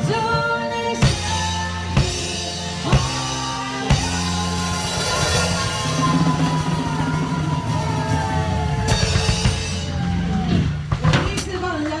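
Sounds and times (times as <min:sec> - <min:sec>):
drum kit playing: 0:00.0 - 0:11.7.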